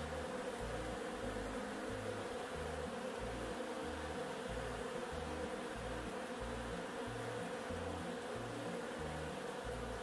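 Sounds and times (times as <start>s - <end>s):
bees buzzing: 0.0s - 10.0s.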